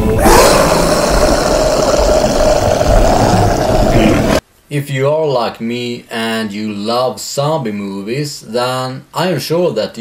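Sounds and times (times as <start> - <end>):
dense static-like noise: 0.7 - 10.0
man speaking: 3.9 - 10.0.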